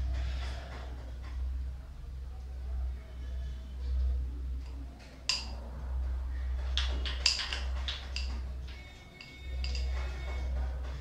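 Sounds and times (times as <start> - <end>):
steady low hum: 0.0 - 11.0
carrom striker clack: 5.3 - 5.6, 6.8 - 8.4
carrom coins clicking together: 6.8 - 8.4.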